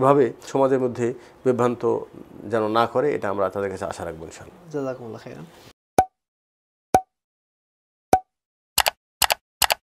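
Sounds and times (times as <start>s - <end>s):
quick double clicks: 8.8s - 9.8s.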